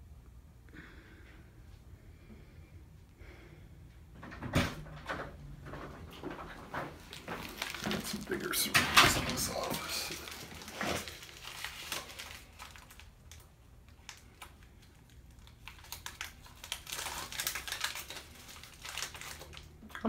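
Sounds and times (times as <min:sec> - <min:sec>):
crinkling and clicking handling: 0:05.0 - 0:20.0.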